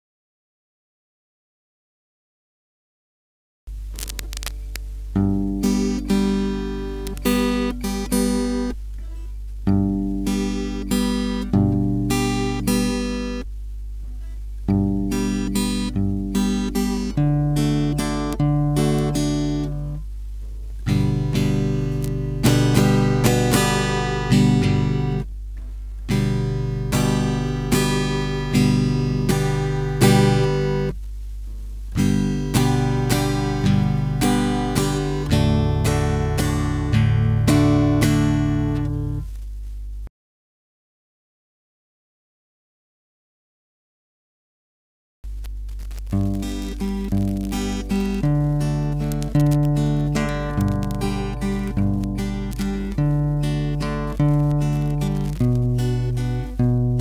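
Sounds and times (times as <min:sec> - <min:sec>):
steady low hum: 0:03.7 - 0:40.1, 0:45.3 - 0:57.0
acoustic guitar playing: 0:04.0 - 0:13.5, 0:14.1 - 0:20.1, 0:20.8 - 0:31.0, 0:31.9 - 0:39.3, 0:46.1 - 0:57.0.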